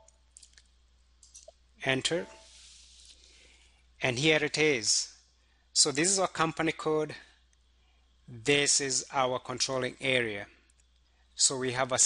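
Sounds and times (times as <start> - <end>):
man talking: 1.8 - 2.4, 4.0 - 5.2, 5.8 - 7.3, 8.3 - 10.5, 11.4 - 12.0.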